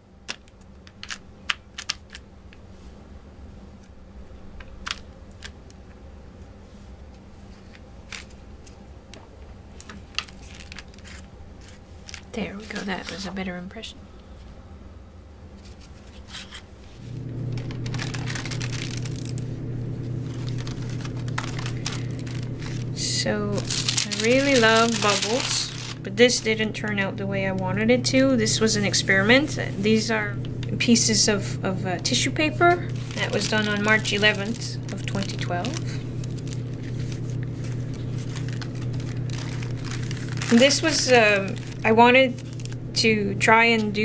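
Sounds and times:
low electrical hum: 0.0s - 44.0s
paper pages rustling: 7.4s - 8.8s, 9.8s - 13.4s, 15.6s - 27.0s, 32.8s - 42.8s.

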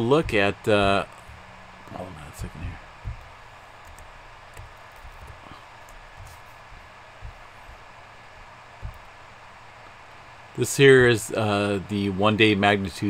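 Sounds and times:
soft low thumps: 0.0s - 11.4s
room tone hiss and hum: 0.0s - 13.0s.

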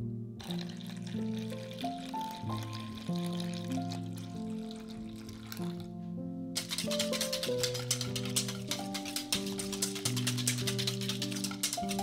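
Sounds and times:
background music of held notes: 0.0s - 12.0s
milk pouring into a steel bowl: 0.4s - 6.0s, 6.6s - 12.0s.

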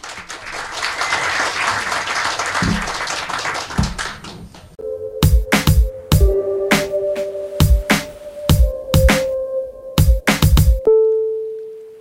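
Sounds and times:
audience applauding: 0.0s - 4.4s
electronic music: 4.8s - 11.2s.

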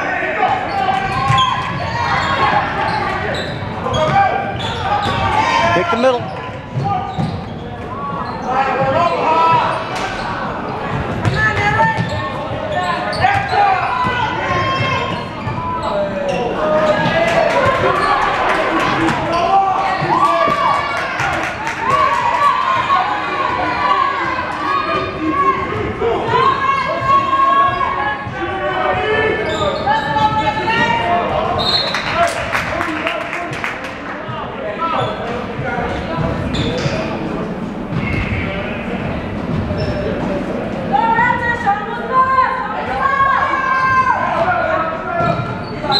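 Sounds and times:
echoing voices in gym: 0.0s - 45.9s
spectators talking: 0.0s - 45.9s.

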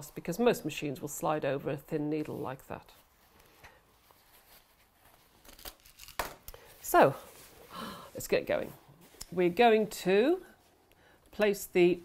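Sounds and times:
fabric rustling: 2.0s - 10.8s.

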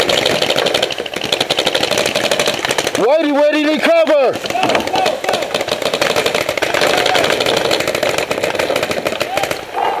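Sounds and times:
paintball markers firing rapidly: 0.0s - 9.8s.

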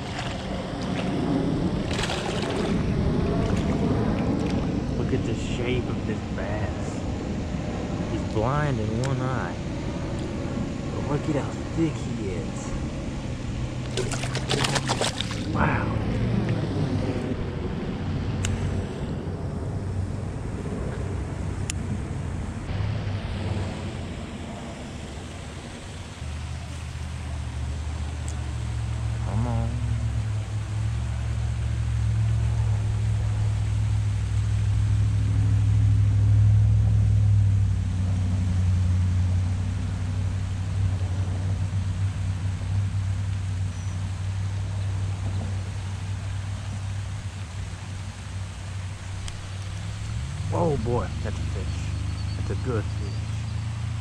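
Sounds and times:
water splash: 0.0s - 1.2s, 1.8s - 4.7s, 13.8s - 15.7s
road traffic rumble: 0.0s - 54.0s.

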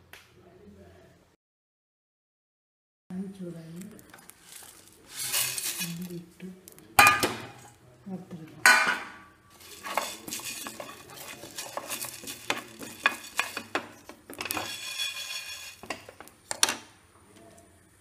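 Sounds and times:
seeds rattling in frying pan: 3.8s - 7.7s, 9.5s - 16.8s
wooden spatula stirring: 4.0s - 7.7s, 9.5s - 16.8s.

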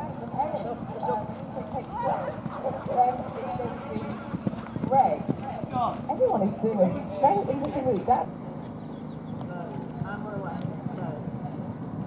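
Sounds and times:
people talking: 0.0s - 8.3s, 9.5s - 11.7s
hoofbeats on sand: 0.5s - 6.2s.

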